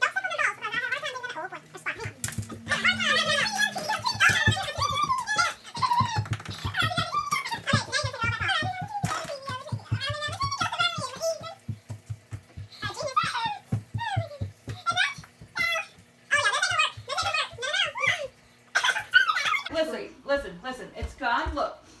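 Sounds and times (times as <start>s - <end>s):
fast low pulse: 1.5s - 5.2s.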